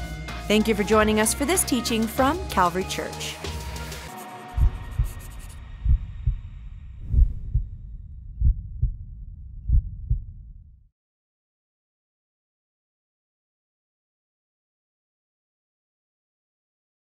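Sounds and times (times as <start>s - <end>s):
music: 0.0s - 6.5s
heartbeat thumps: 4.6s - 10.8s.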